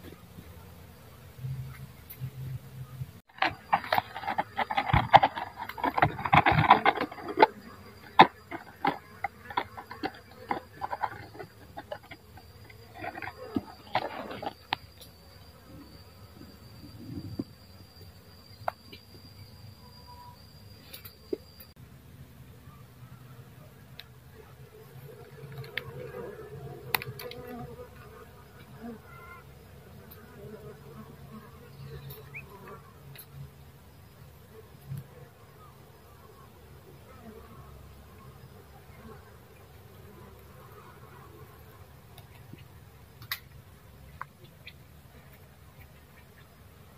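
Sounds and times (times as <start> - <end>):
honeybees buzzing: 0.1 - 21.7, 24.3 - 43.4
bees humming: 0.2 - 21.8.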